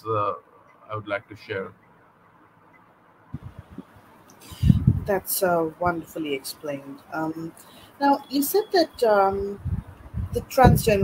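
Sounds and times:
soft low knocks: 3.4 - 3.9.

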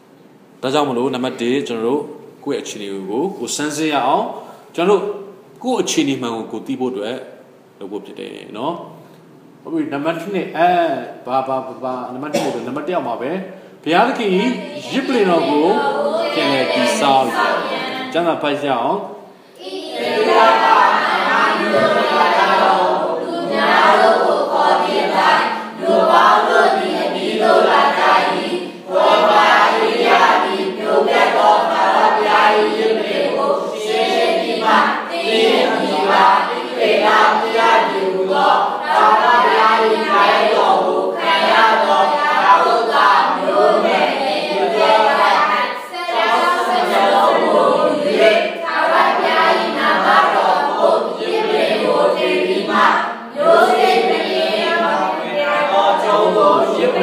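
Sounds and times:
congregation singing: 13.9 - 57.0.

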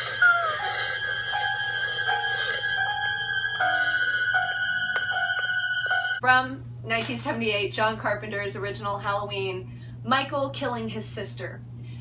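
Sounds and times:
dark synthesizer score: 0.0 - 6.2.

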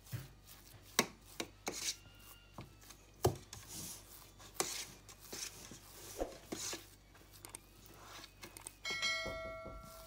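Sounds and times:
glass tamping biscuit crumbs: 0.0 - 10.0.

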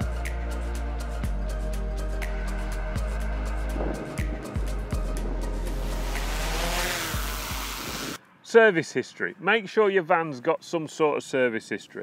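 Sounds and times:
background music with deep bass: 0.0 - 8.2
drone propellers rushing: 3.6 - 8.2.

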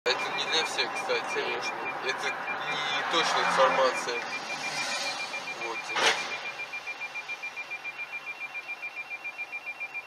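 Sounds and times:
faint road noise: 0.1 - 9.9
rapid high-pitched electronic beeping: 0.1 - 10.0.

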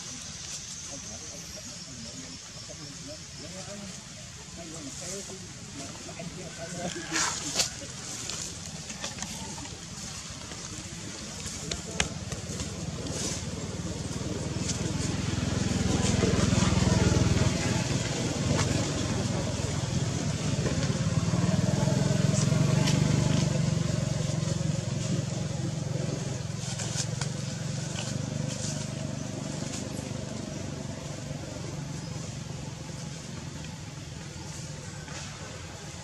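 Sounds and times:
faint voices: 0.0 - 36.0
low engine rumble: 0.0 - 36.0.

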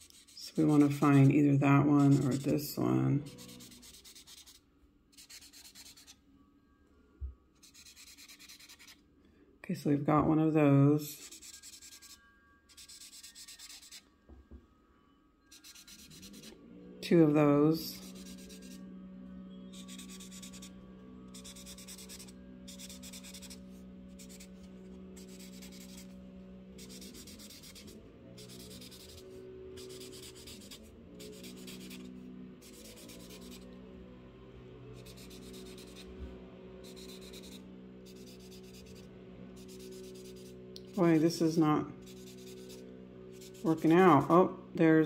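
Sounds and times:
marker scratching on paper: 0.0 - 1.3, 2.0 - 2.6, 3.4 - 4.6, 5.2 - 6.2, 7.6 - 9.0, 11.2 - 14.0, 15.6 - 16.5, 19.7 - 20.7, 21.3 - 24.6, 25.2 - 26.2, 26.8 - 33.6, 35.0 - 36.1, 36.8 - 41.2, 42.1 - 42.8.

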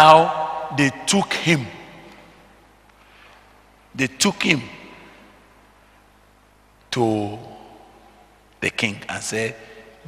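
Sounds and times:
man speaking into a microphone: 0.0 - 2.1, 4.0 - 5.1, 6.9 - 7.6, 8.6 - 9.8
low steady hum: 0.0 - 10.0.

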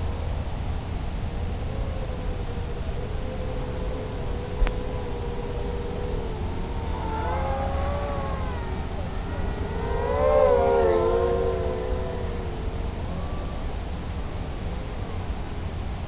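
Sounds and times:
quadcopter motors whining: 4.0 - 15.2.

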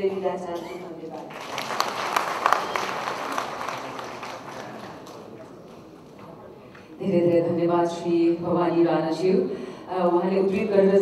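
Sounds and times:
audience applauding: 1.2 - 6.1.

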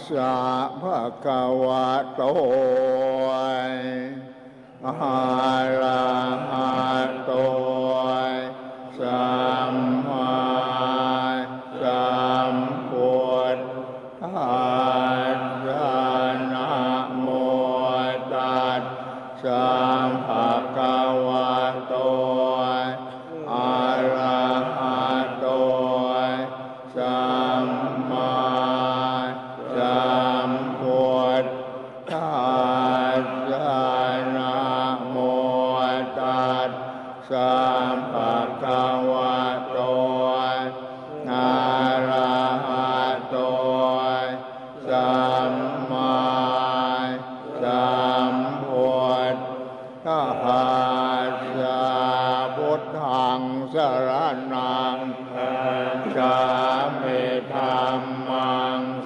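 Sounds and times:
monks chanting in unison: 0.0 - 59.0.

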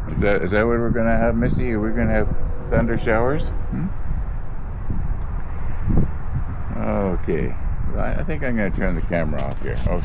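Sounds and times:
background hum and hiss: 0.0 - 10.0.

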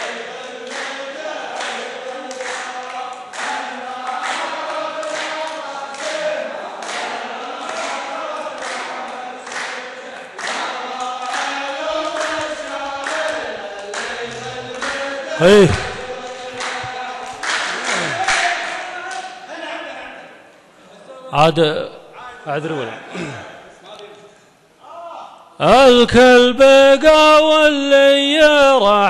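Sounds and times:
handclaps: 0.0 - 19.4
men singing a cappella: 0.0 - 19.5.

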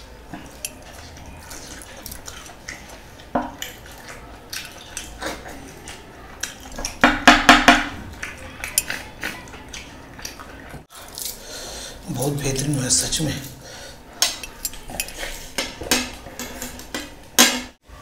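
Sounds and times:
chewing meat off a bone: 0.2 - 7.0, 7.9 - 11.5.

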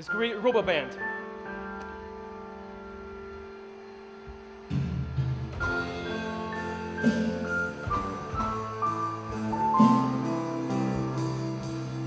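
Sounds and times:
piano chord ringing: 0.0 - 12.0
piano notes: 0.0 - 12.0.

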